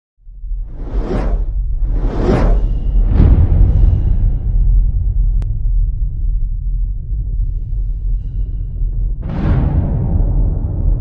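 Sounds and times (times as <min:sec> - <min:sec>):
deep rumble: 0:00.2 - 0:11.0
cinematic whoosh: 0:00.5 - 0:05.4.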